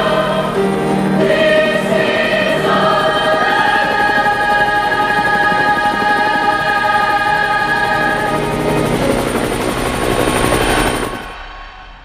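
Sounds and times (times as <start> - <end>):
helicopter rotor chopping: 0.0 - 11.4
choir holding a chord: 0.0 - 12.0.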